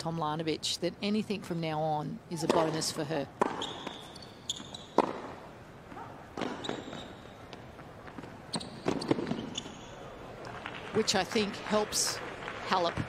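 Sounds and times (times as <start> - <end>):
racket hitting tennis ball: 2.4 - 7.1, 8.1 - 9.7
tennis shoes squeaking on court: 2.4 - 10.2.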